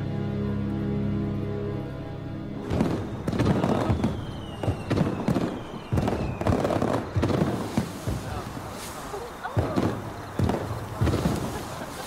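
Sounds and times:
fireworks bangs and crackles: 0:02.6 - 0:12.0
falling firework whistle: 0:02.7 - 0:12.0.

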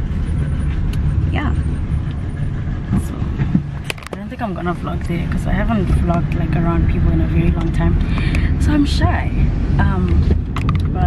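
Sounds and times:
car interior rumble: 0:00.0 - 0:11.0.

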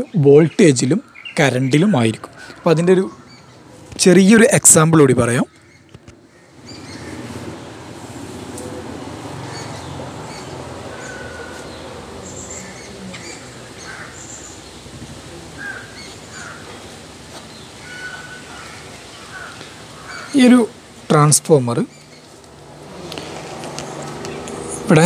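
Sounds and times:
birds chirping: 0:00.0 - 0:25.0.

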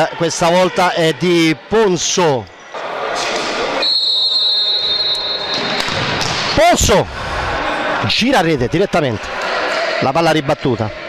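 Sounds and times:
sports hall noise: 0:00.0 - 0:11.0
referee's whistle blast: 0:03.8 - 0:05.9.

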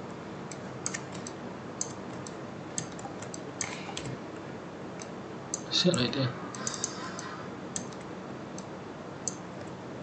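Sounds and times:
mouse and keyboard clicking: 0:00.5 - 0:04.1, 0:05.0 - 0:09.8.

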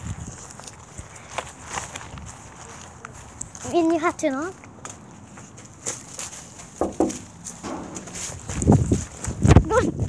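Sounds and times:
footsteps on grass: 0:00.1 - 0:09.6.

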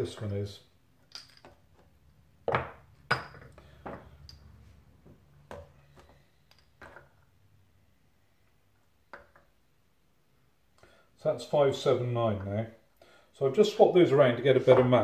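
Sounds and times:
metal parts clinking and knocking: 0:01.0 - 0:01.6.

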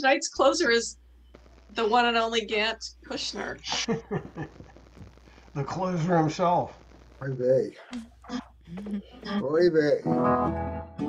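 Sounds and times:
person speaking: 0:05.5 - 0:10.0.

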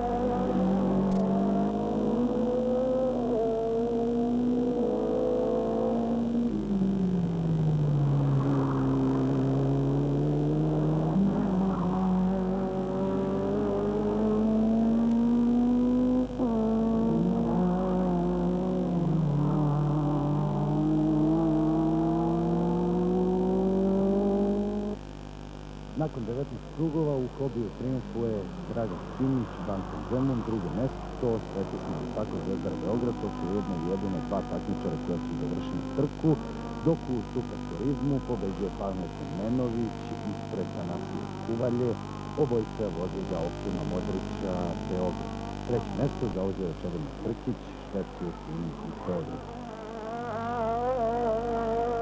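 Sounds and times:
racing car engine accelerating: 0:00.0 - 0:52.0.

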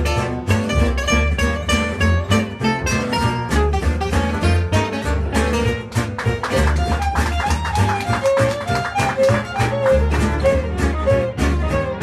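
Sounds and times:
acoustic guitars strumming: 0:00.0 - 0:12.0
upright bass: 0:00.0 - 0:12.0
violin melody: 0:00.0 - 0:12.0.

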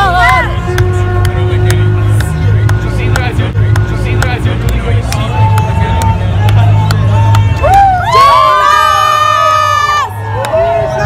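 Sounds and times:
young people cheering and yelling: 0:05.2 - 0:11.0.

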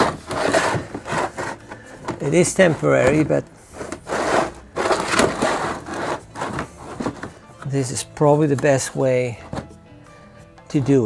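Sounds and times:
plastic boxes scraping on wood: 0:00.0 - 0:07.8.

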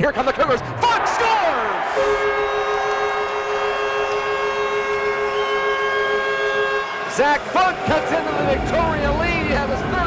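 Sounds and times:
goal horn blast: 0:01.8 - 0:08.9.

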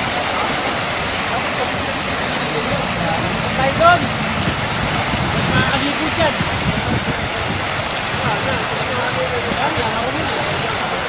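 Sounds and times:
faint voices: 0:00.0 - 0:11.0
running water rushing: 0:00.0 - 0:11.0.

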